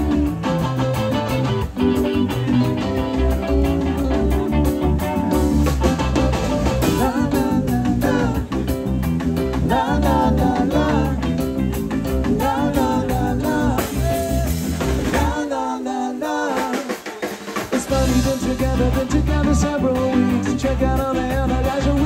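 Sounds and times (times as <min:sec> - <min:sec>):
bass guitar: 0:00.0 - 0:15.7, 0:17.6 - 0:22.0
drum kit: 0:00.0 - 0:22.0
electric guitars: 0:00.0 - 0:22.0.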